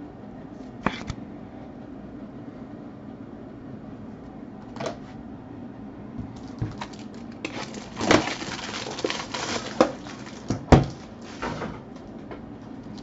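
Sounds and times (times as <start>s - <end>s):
low steady hum: 0.0s - 13.0s
packaging rustling and crinkling: 6.3s - 13.0s.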